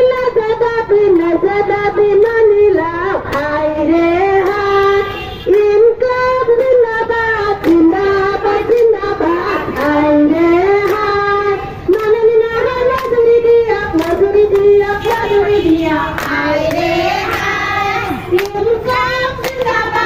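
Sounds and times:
hand claps: 0:00.0 - 0:20.0
women singing together: 0:00.0 - 0:20.0.

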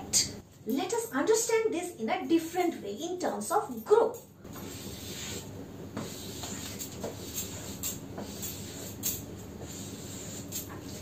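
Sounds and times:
low room hum: 0:00.0 - 0:11.0
chalk strokes on chalkboard: 0:04.6 - 0:11.0.

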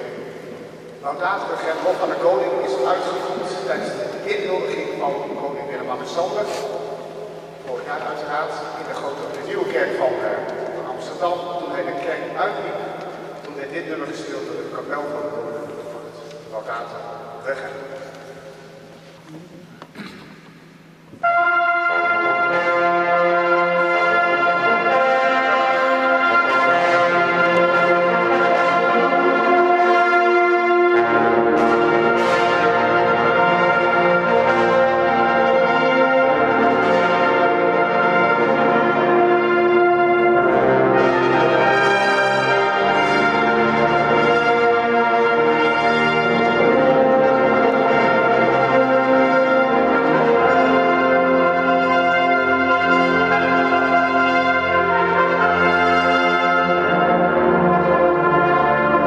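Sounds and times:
brass ensemble playing: 0:00.0 - 0:19.2, 0:20.7 - 0:59.0.

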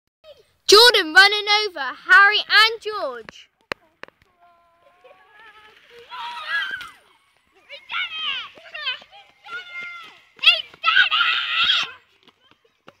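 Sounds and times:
children calling and shouting: 0:00.2 - 0:13.0.

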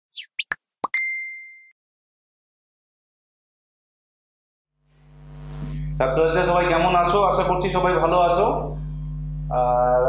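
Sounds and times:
quick swishes: 0:00.1 - 0:00.6.

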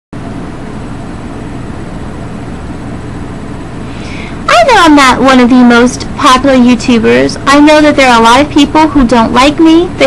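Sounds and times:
steady rumbling noise: 0:00.2 - 0:10.0.

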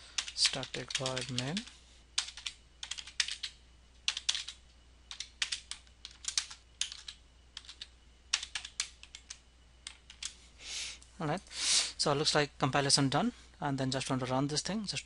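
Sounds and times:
computer keyboard typing: 0:00.2 - 0:10.4.

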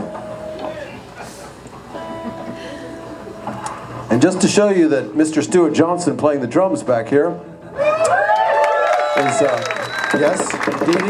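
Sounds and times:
audience murmur: 0:00.4 - 0:04.1.

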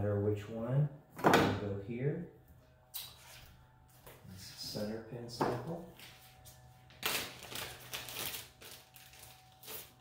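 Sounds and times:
steady low hum: 0:00.0 - 0:10.0
plastic bag crinkling: 0:06.9 - 0:10.0.

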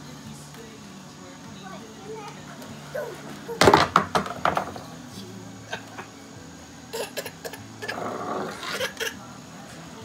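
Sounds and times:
plastic chair knocking on concrete: 0:03.6 - 0:05.0
chair scraping: 0:07.8 - 0:09.0.

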